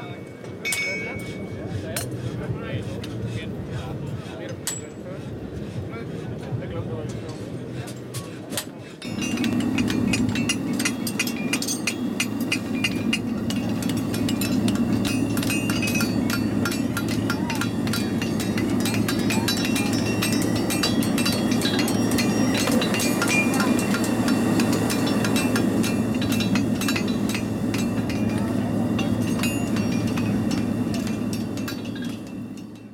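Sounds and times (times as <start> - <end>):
hammer blows on anvil: 0.0 - 2.2, 8.6 - 32.9
gas forge burning: 0.0 - 32.9.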